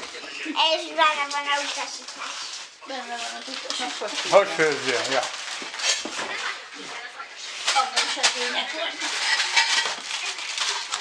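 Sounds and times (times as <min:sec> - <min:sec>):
small child talking: 0:00.4 - 0:03.8.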